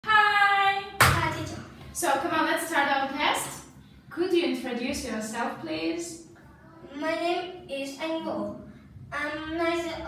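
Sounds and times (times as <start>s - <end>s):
sharp hand clap: 1.0s - 1.5s.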